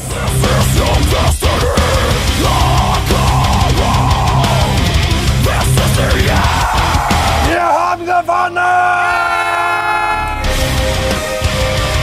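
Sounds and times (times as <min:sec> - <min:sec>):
heavy metal music: 0:00.0 - 0:12.0
person yelling: 0:02.4 - 0:10.6.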